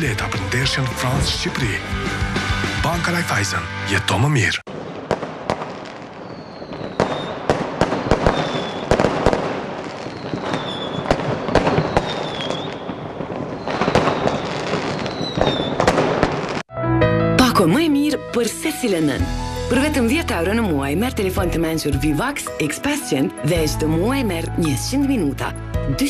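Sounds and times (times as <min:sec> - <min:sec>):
music: 0:00.0 - 0:04.6, 0:16.7 - 0:26.0
fireworks bangs and crackling: 0:04.7 - 0:16.7
firework whistles: 0:06.2 - 0:16.6.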